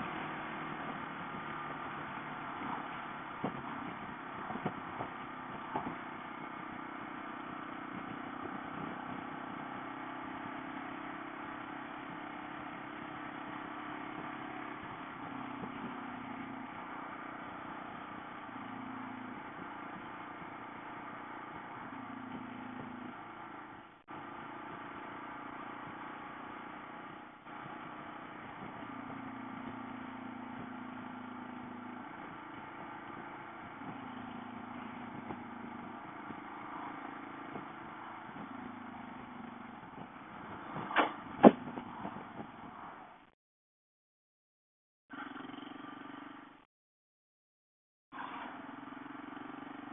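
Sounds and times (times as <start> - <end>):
motorcycle engine riding: 0.0 - 43.3, 45.1 - 46.7, 48.1 - 49.9
road noise: 0.0 - 43.3, 45.1 - 46.7, 48.1 - 49.9
sharp knocks: 40.8 - 41.9.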